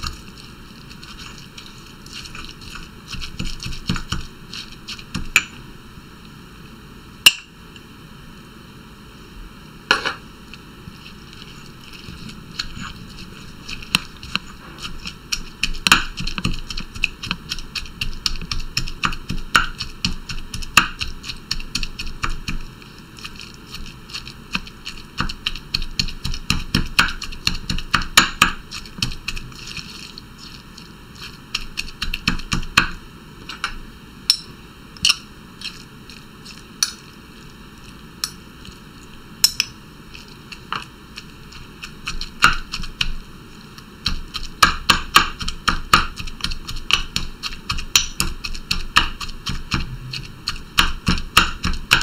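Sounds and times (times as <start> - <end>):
pestle pounding in stone mortar: 2.1 - 5.5, 12.0 - 22.6, 24.2 - 29.9, 31.3 - 33.0, 41.8 - 43.2, 44.0 - 52.0.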